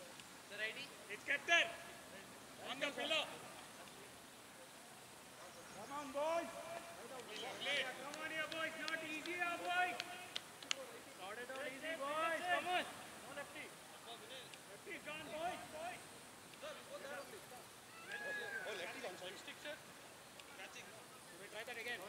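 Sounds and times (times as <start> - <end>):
men talking and calling out: 0.0 - 22.0.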